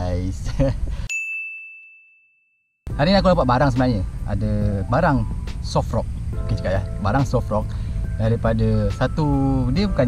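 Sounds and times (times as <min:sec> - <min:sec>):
bell-like chime ding: 0:01.1 - 0:02.6.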